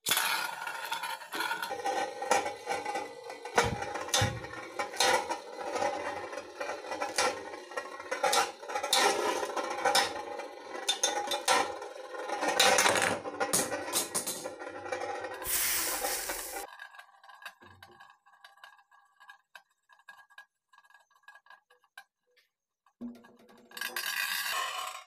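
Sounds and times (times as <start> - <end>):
spinning tops whirring: 15.4 - 16.7.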